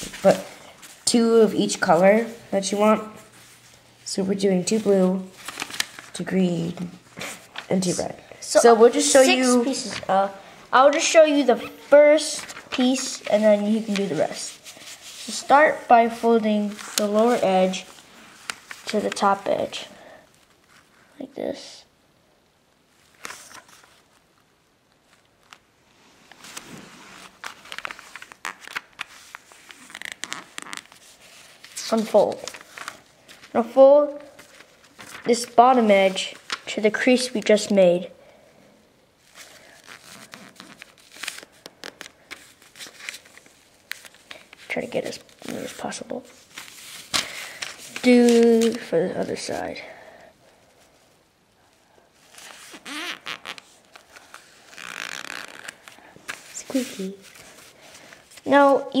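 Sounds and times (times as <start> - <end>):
paper crackling and rustling: 4.6 - 8.0, 8.7 - 10.2, 10.8 - 19.6, 23.0 - 25.7, 26.3 - 37.7, 39.2 - 49.6, 52.2 - 59.0
squeaky paper glides: 29.7 - 31.2, 39.8 - 42.7, 52.3 - 57.3.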